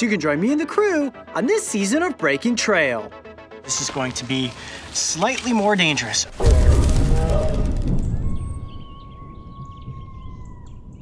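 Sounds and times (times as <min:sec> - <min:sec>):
low rumble: 0:06.4 - 0:11.0
bird chirps: 0:07.9 - 0:11.0.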